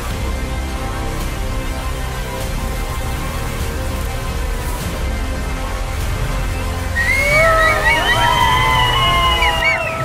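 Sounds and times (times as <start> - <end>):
people whistling through fingers: 7.0 - 10.0.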